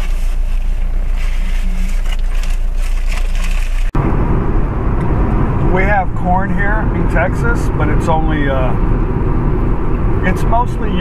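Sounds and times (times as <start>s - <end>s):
low hum inside car cabin: 0.0s - 11.0s
tyre and road noise: 0.0s - 11.0s.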